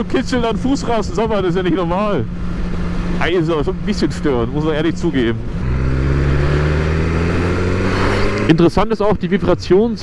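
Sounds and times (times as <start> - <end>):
wind and road noise: 0.0 - 10.0
motorcycle engine low revs: 5.3 - 8.6.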